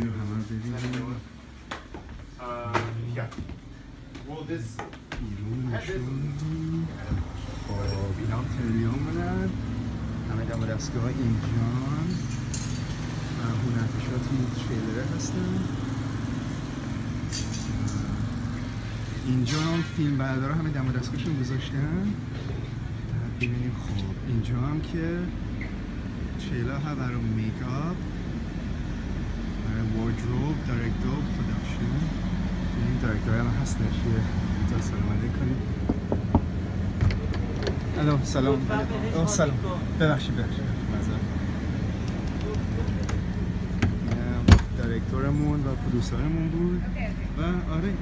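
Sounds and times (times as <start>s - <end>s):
engine idling hum: 5.2s - 48.0s.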